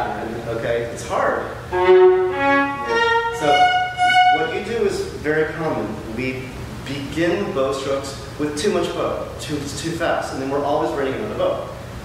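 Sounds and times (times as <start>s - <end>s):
viola playing held notes: 1.7s - 4.8s
person speaking: 2.8s - 6.3s.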